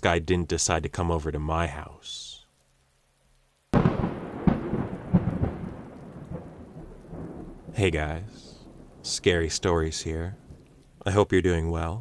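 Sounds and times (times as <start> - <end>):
rain pattering: 0.0 - 12.0
thunder cracking and rumbling: 3.7 - 10.8.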